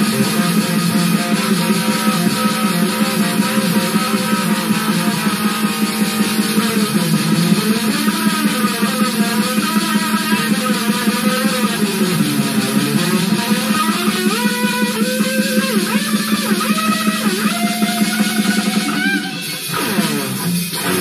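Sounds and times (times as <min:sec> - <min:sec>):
distorted electric guitar riff: 0:00.0 - 0:21.0
fast drum loop: 0:00.0 - 0:21.0.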